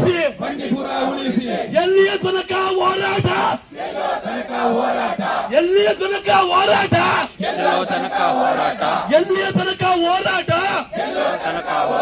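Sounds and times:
man shouting into a microphone: 0.0s - 0.4s, 1.7s - 3.7s, 5.5s - 8.1s, 9.0s - 10.9s
crowd chanting in unison: 0.0s - 5.6s, 6.2s - 9.8s, 10.4s - 12.0s.

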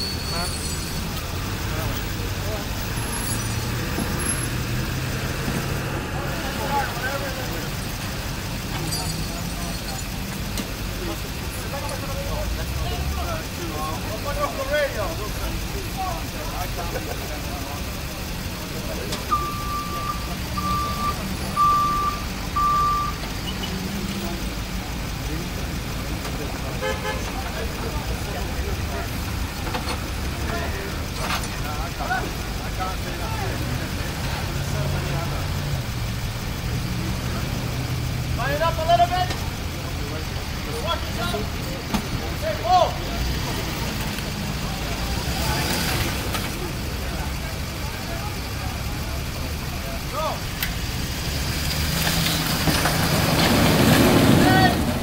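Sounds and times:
engine idling: 0.0s - 55.0s
people's voices: 0.0s - 55.0s
street traffic: 0.0s - 55.0s
short beeps: 19.3s - 23.8s.

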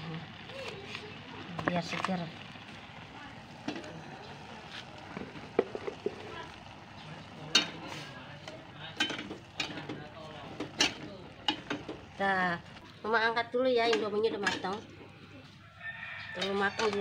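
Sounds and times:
boiling pan hissing: 0.0s - 17.0s.

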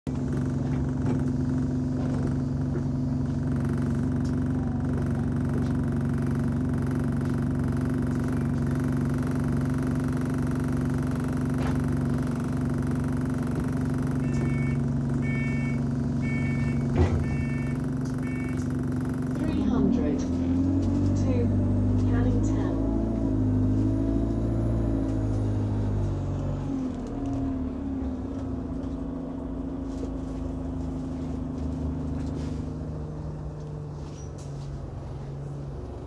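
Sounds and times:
bus diesel engine drone: 0.0s - 36.0s.

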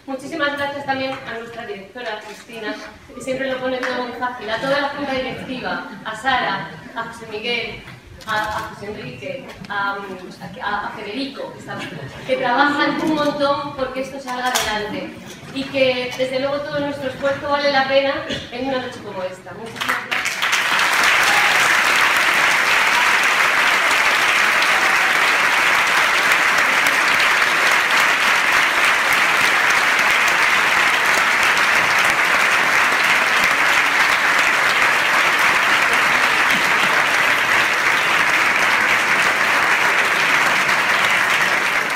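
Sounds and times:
audience applause: 19.8s - 41.9s.

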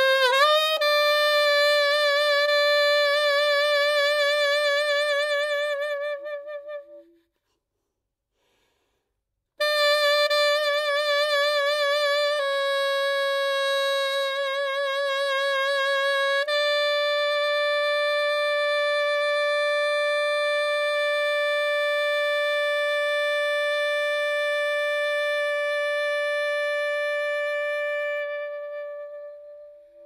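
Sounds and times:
saxophone playing: 0.0s - 7.3s, 9.6s - 30.0s.

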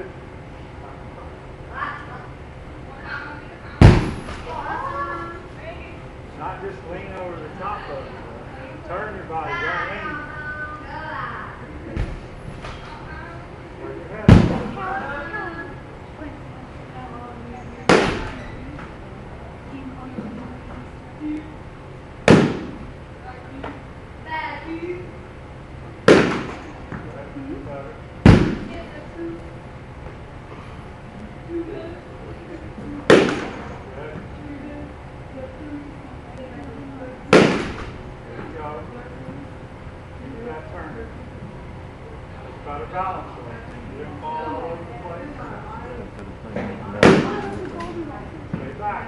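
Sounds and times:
bat hitting ball: 22.2s - 22.8s, 26.1s - 26.7s, 33.1s - 33.7s, 37.3s - 38.0s.

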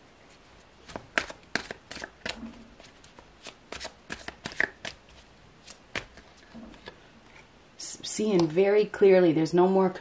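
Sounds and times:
cards being shuffled: 0.8s - 7.4s.

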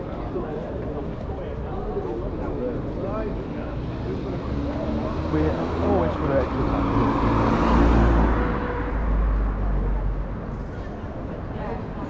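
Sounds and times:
people's voices: 0.0s - 12.0s
car driving past: 4.0s - 10.7s.

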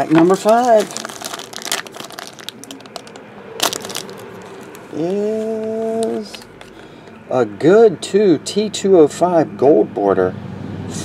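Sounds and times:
plastic bag crinkling: 0.0s - 6.9s.

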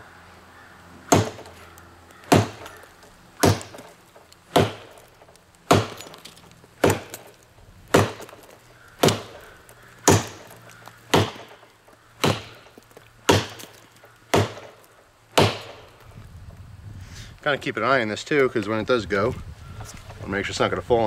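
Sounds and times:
machete chopping into tree trunk: 1.0s - 16.0s.

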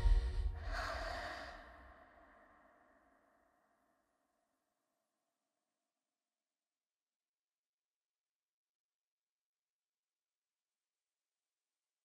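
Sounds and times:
film score music: 0.0s - 1.5s
breathy exhale: 0.0s - 3.3s.

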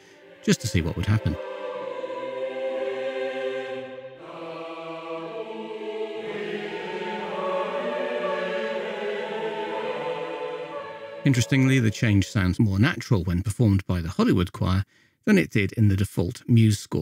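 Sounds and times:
choir singing sustained chords: 0.0s - 12.6s.

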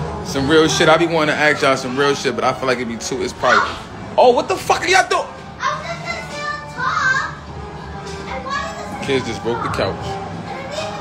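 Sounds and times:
background music: 0.0s - 11.0s
children playing and calling out: 5.5s - 11.0s.

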